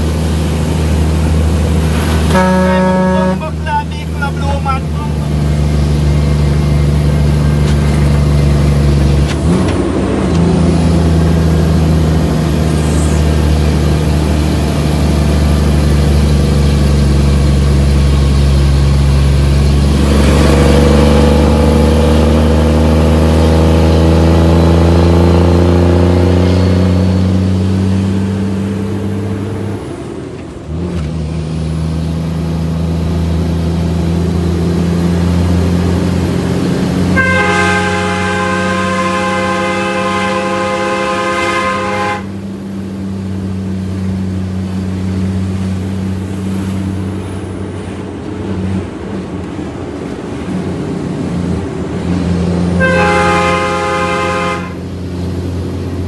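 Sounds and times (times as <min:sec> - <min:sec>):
truck diesel engine from inside cab: 0:00.0 - 0:56.0.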